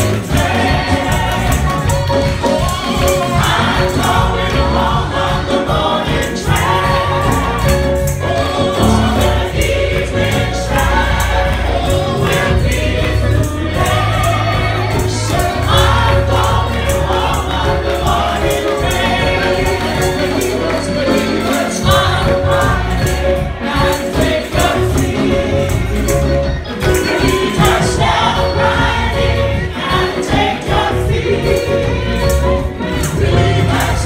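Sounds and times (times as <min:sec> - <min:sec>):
gospel choir singing: 0:00.0 - 0:34.0
keyboard accompaniment: 0:00.0 - 0:34.0
steady percussive beat: 0:00.0 - 0:34.0
strong bass: 0:06.6 - 0:17.2.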